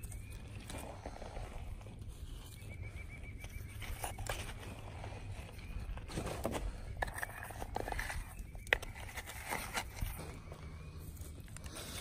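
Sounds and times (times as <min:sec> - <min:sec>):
low steady rumble: 0:00.0 - 0:12.0
bird trilling: 0:02.4 - 0:05.9.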